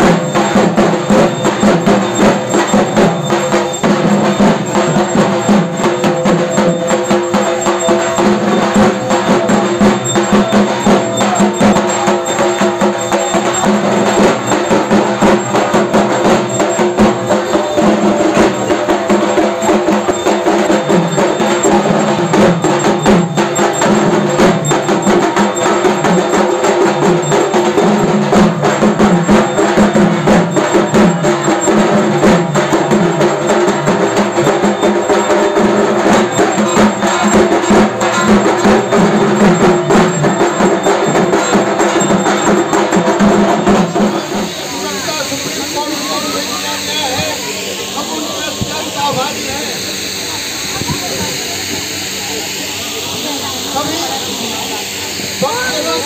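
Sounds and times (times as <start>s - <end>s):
fast dense drumming: 0.0s - 56.0s
quiet chatter: 0.0s - 56.0s
steady pitched tones: 0.0s - 56.0s
voices: 0.0s - 56.0s
hiss: 44.0s - 56.0s.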